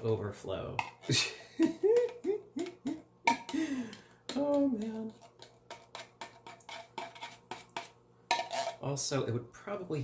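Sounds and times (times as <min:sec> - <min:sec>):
metal spoon scraping in can: 0:04.5 - 0:09.0.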